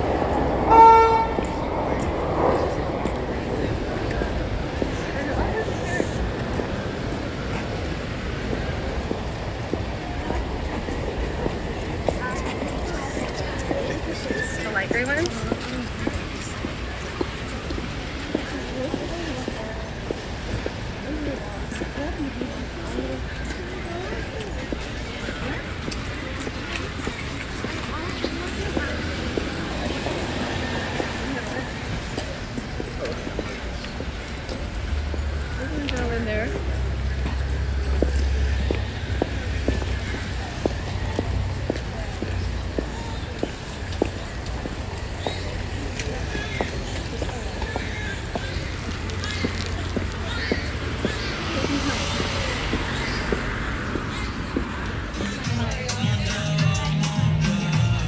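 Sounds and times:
faint voices talking: 0.0 - 58.0
street noise rumble: 0.0 - 58.0
footsteps on pavement: 0.2 - 56.4.

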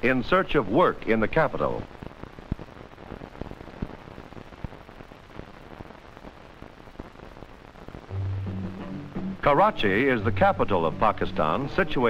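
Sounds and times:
film soundtrack hiss with pops: 0.0 - 12.0.

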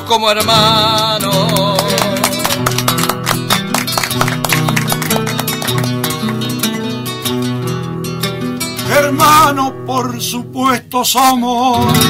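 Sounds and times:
acoustic guitar plucking and strumming: 0.0 - 12.0.

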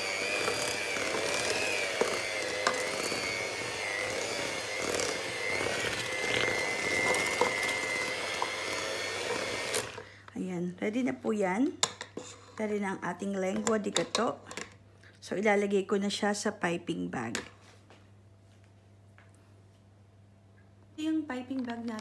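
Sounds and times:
electric hand mixer whining: 0.0 - 10.1.

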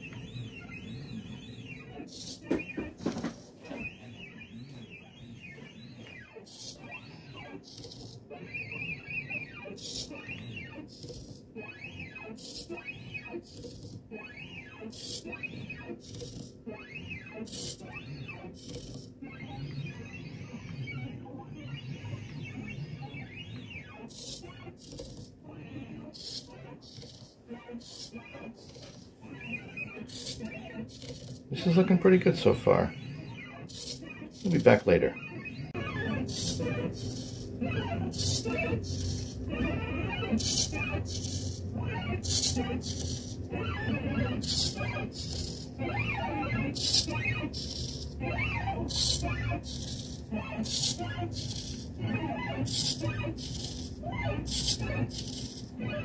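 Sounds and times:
stepper motors whining: 0.0 - 56.0.

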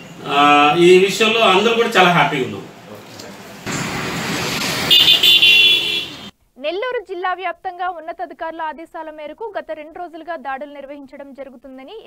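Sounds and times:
street traffic: 0.0 - 6.4
vehicle horn held steadily: 4.9 - 6.3.

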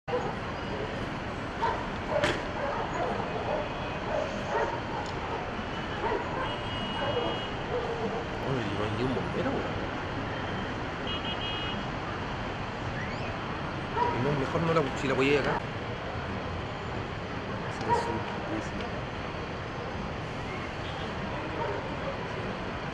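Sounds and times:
city background hum: 0.1 - 22.9.

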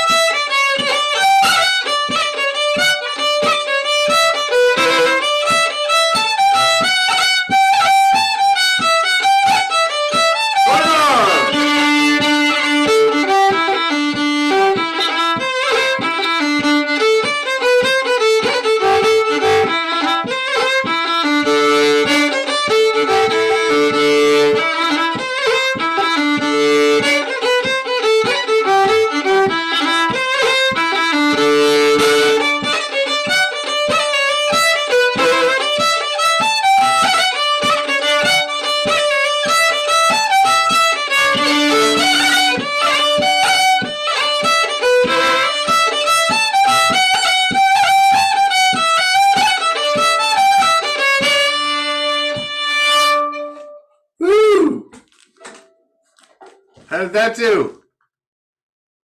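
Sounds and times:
fiddle playing short bowed notes: 0.0 - 55.0.

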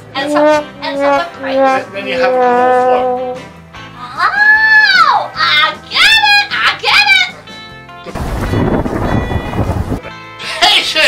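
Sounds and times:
background music: 0.0 - 11.0
thunder crash: 8.1 - 10.0.

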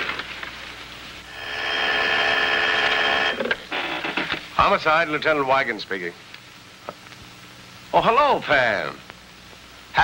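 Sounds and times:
telephone ringing: 1.3 - 4.3.

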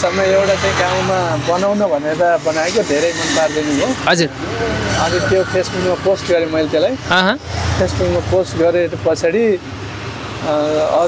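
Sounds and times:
people talking: 0.0 - 9.6, 10.4 - 11.0.

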